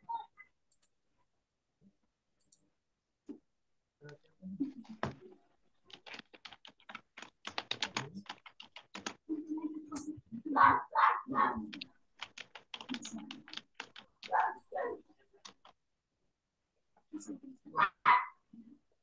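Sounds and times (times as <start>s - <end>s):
keyboard typing clicks: 5.9s - 9.2s, 11.6s - 14.6s, 15.4s - 15.8s
dog barking: 10.5s - 11.7s, 14.3s - 15.1s, 17.8s - 18.4s.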